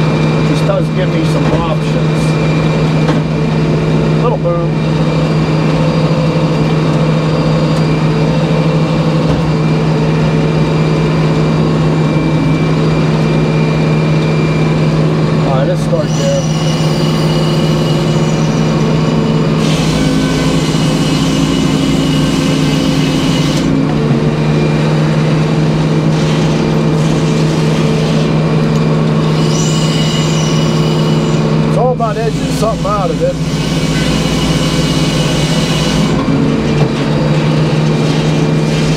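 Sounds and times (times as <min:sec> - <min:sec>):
sawmill humming: 0:00.0 - 0:38.9
saw blade cutting log: 0:19.6 - 0:23.7, 0:32.3 - 0:36.2, 0:37.8 - 0:38.9.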